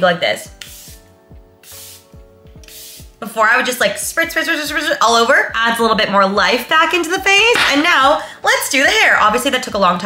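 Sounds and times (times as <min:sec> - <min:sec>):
background music with soft beat: 0:00.0 - 0:10.0
spray bottle hissing: 0:00.6 - 0:03.2.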